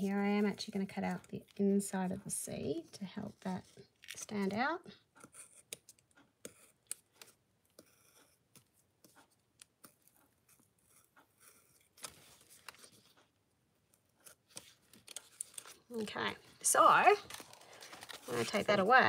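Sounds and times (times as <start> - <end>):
craft knife cutting paper: 5.2 - 13.3.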